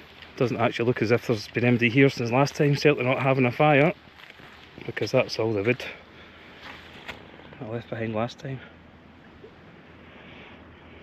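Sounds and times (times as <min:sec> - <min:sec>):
faint outdoor background hiss: 0:00.0 - 0:11.0.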